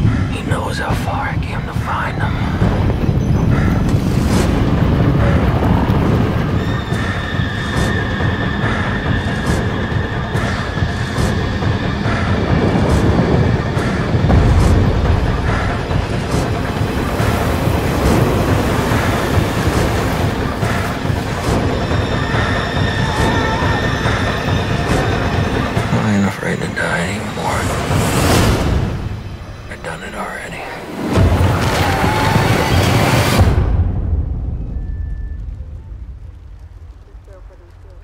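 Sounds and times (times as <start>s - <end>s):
loud low rumble: 10.3s - 30.5s.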